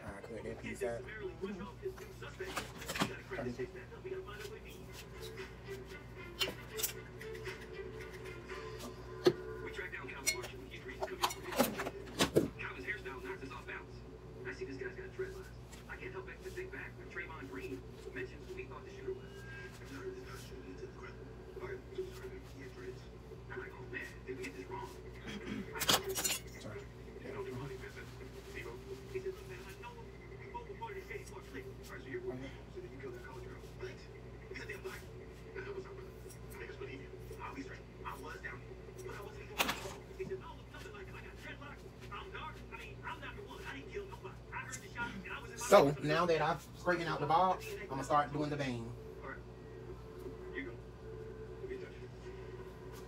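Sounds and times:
television speech and music: 0.0 - 53.0.

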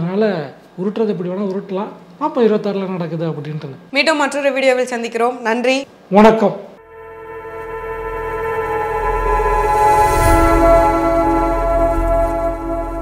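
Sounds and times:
shimmering swell: 6.8 - 13.0
synthesized chord: 6.8 - 13.0.

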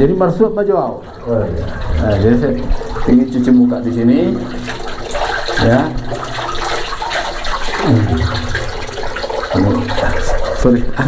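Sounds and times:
water splashing into basin: 0.0 - 11.0.

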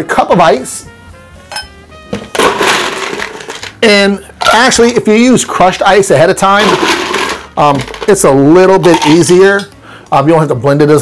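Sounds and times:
ice cubes clattering: 2.3 - 3.8, 6.5 - 9.5.

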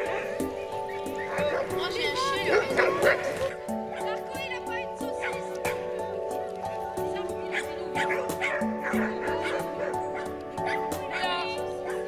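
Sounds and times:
background music: 0.0 - 12.0
dogs barking and yipping: 0.0 - 12.0
dog yelp: 7.5 - 12.0.

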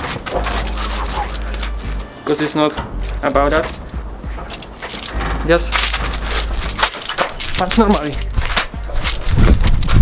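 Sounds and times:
metal keys jingling: 0.0 - 10.0.

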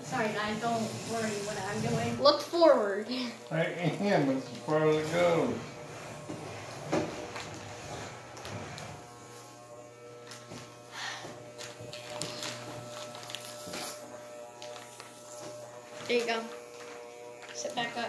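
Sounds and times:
electric hair clippers buzzing: 0.0 - 18.0.

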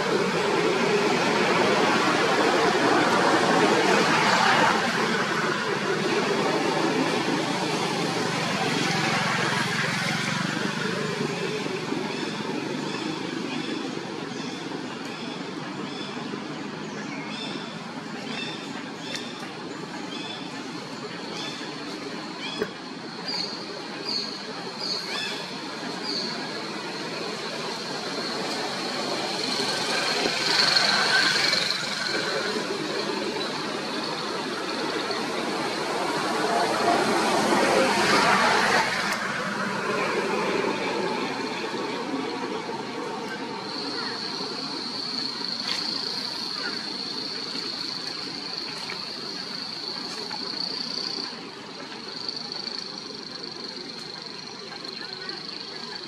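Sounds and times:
faint voices: 0.0 - 56.0.

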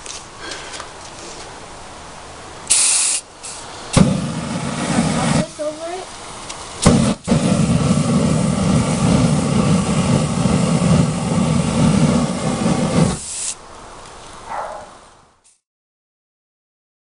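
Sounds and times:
hissing rush of burning spray: 2.7 - 13.6.

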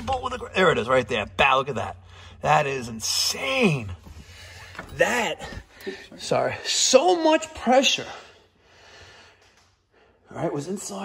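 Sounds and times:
man speaking: 0.0 - 4.1, 4.8 - 8.4, 10.3 - 11.0
man breathing softly: 8.3 - 10.3.

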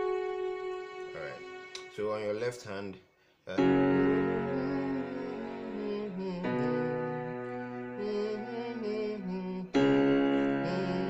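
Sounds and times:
keyboard piano notes: 0.0 - 1.6, 3.5 - 11.0.

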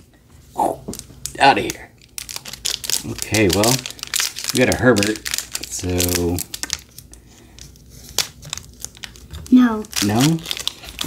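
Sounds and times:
foil wrapper crinkling: 0.8 - 11.0.

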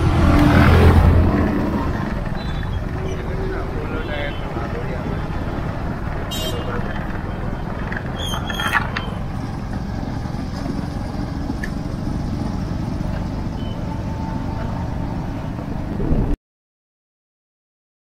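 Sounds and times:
short high traffic sounds: 0.0 - 15.9
motorcycle engine and road noise: 0.0 - 16.4.

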